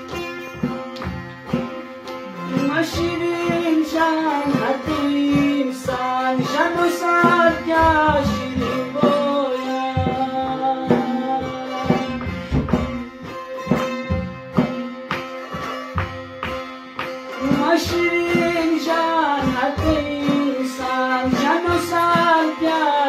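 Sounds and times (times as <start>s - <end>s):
plucked lute melody: 0.0s - 23.0s
man singing: 2.5s - 14.4s, 17.4s - 23.0s.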